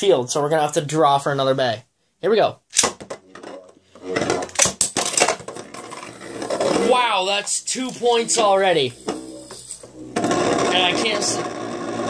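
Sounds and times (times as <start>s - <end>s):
spinning tops whirring and clashing: 8.2s - 12.0s.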